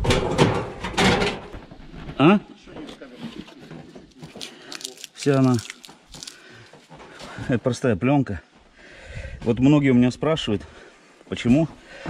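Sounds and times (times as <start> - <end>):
faint rustling of plastic film: 1.9 - 7.4.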